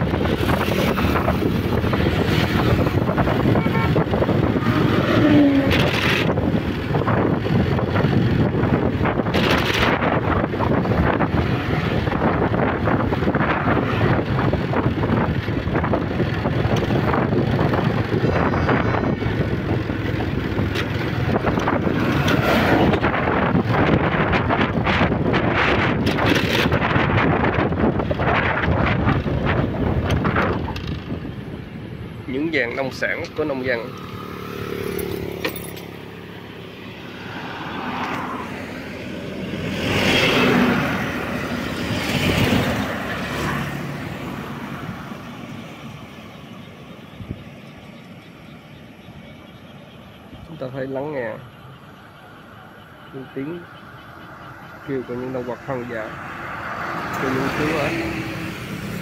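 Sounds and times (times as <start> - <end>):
motorbike engine and tyre noise: 0.0 - 59.0
wind buffeting microphone: 0.0 - 59.0.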